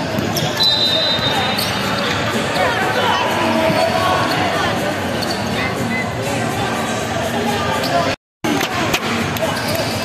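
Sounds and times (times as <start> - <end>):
players' and spectators' voices: 0.0 - 10.0.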